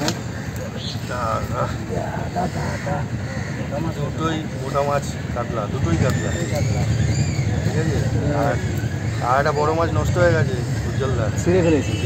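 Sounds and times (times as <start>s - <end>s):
men's voices: 0.0s - 12.0s
road traffic rumble: 0.0s - 12.0s.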